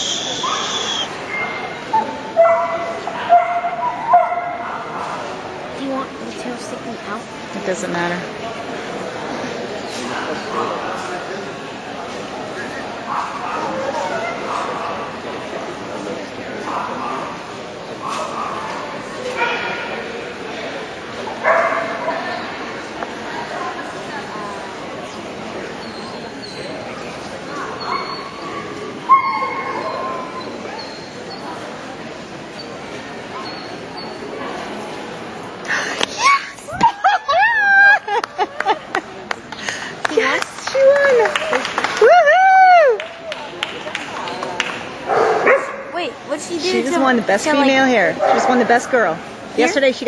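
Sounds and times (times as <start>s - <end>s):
crowd chatter in a large hall: 0.0s - 50.0s
murmur of voices: 0.0s - 50.0s
dog barking: 2.4s - 4.9s, 21.4s - 22.2s, 45.1s - 45.9s.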